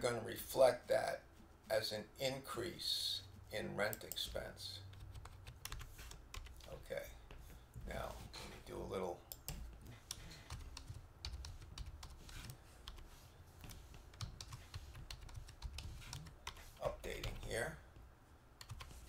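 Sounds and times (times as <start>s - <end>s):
faint keyboard typing: 3.9s - 8.2s, 9.3s - 18.0s, 18.6s - 19.0s.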